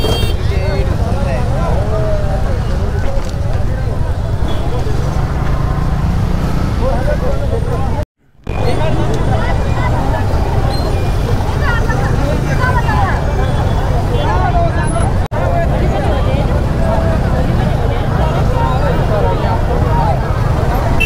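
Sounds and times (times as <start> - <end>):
idling motorcycles and traffic: 0.0 - 21.0
people chattering: 0.0 - 21.0.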